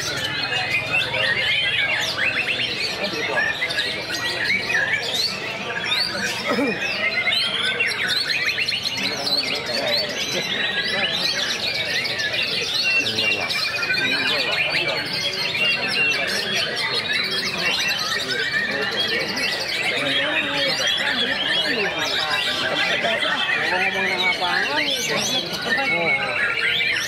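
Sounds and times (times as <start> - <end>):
birds singing whistles and trills: 0.0 - 27.0
voices murmuring: 0.0 - 27.0.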